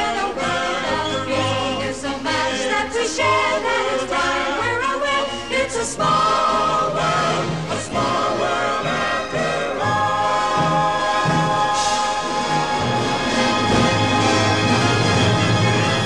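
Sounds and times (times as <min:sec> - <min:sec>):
choir singing: 0:00.0 - 0:16.0.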